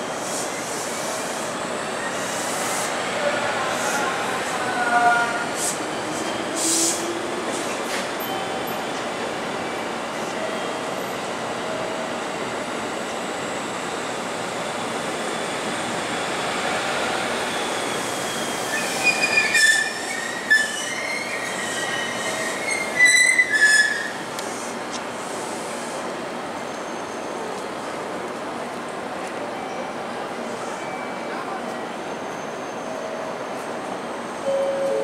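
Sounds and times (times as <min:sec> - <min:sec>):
train wheels rumbling on rail: 0:00.0 - 0:29.5
high-pitched wheel squeals: 0:17.7 - 0:24.2.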